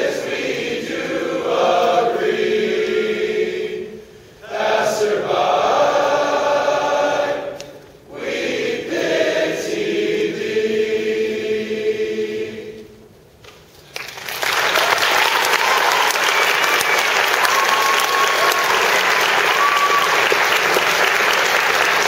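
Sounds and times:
male choir singing: 0.0s - 13.0s.

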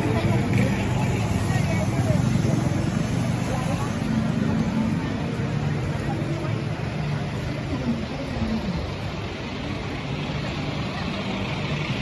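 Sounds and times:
people talking: 0.0s - 12.0s
vehicle traffic: 0.0s - 12.0s.

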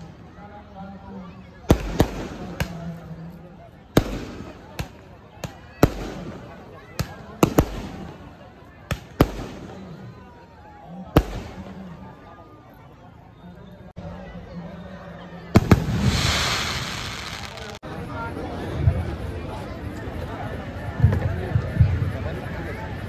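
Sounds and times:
crowd chatter: 0.0s - 23.0s
firecrackers banging: 15.6s - 17.8s.

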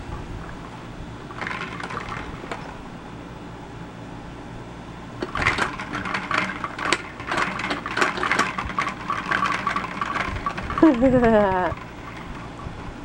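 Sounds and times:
toy spinning top clicks and rattles: 5.2s - 12.3s.

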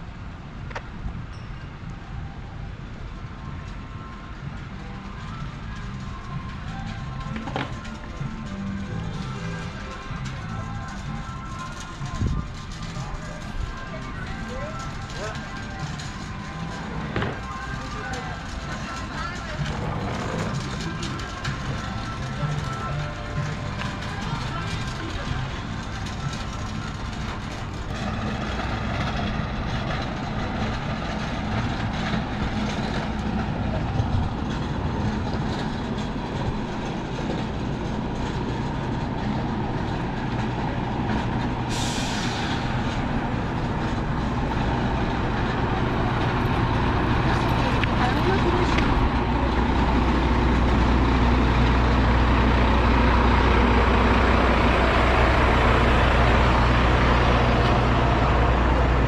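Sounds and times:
diesel truck engine idling: 2.2s - 59.0s
hiss of air: 41.7s - 42.9s.

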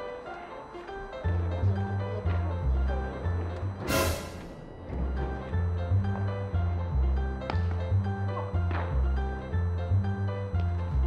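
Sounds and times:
background music with bass line: 0.9s - 11.0s.

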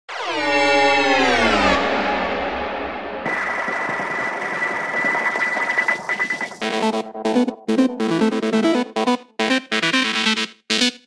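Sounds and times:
buzzy synthesizer tone gliding down: 0.1s - 10.1s
dense noisy synth wash: 0.5s - 8.9s.

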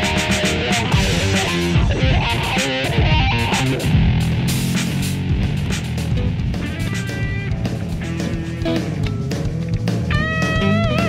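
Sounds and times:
bass line: 0.0s - 11.0s
guitar picked melody: 0.0s - 11.0s
steady beat: 0.0s - 11.0s.

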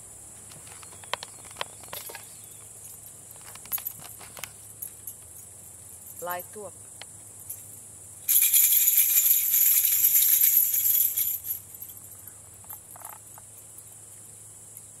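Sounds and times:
insects chirring: 0.0s - 15.0s
metal rattle jingling: 1.9s - 6.7s, 7.3s - 14.1s.

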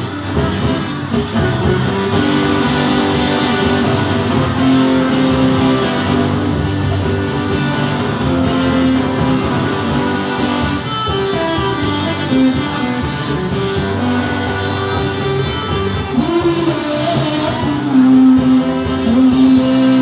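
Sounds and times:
acoustic guitars strumming: 0.0s - 20.0s
cajon: 0.0s - 20.0s.

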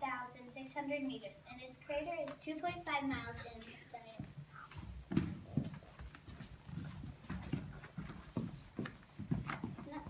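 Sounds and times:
footsteps on a hard floor: 2.7s - 10.0s.

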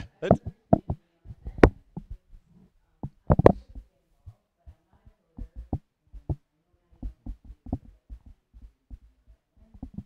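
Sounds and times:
low thumps: 0.0s - 2.4s, 5.4s - 6.4s, 7.0s - 10.0s
muffled distant speech: 0.0s - 10.0s.

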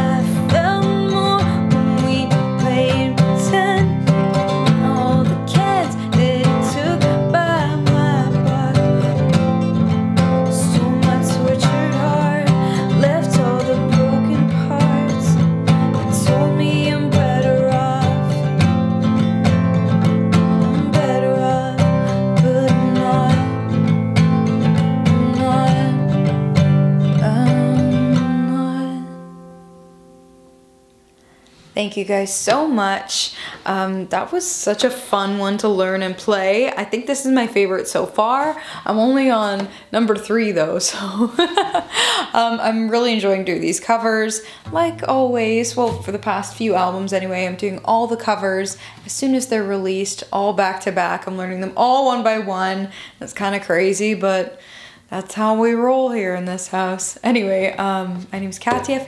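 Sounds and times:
woman singing: 0.0s - 19.0s, 20.4s - 23.9s, 24.5s - 29.5s, 42.4s - 50.1s, 58.2s - 59.0s
acoustic guitar strumming: 0.0s - 31.1s, 44.6s - 48.8s, 58.4s - 59.0s.

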